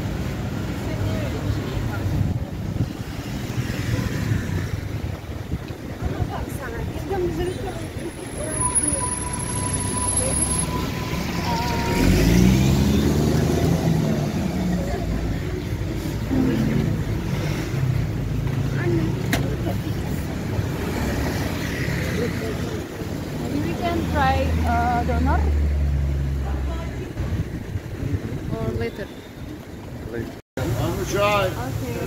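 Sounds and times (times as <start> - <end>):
cars driving past: 9.4 - 27.5
vehicle engine: 9.8 - 23.1.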